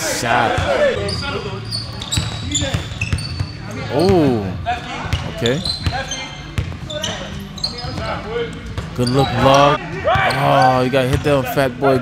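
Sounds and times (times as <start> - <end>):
players' voices: 0.0 - 12.0
sneaker squeaks: 0.5 - 11.2.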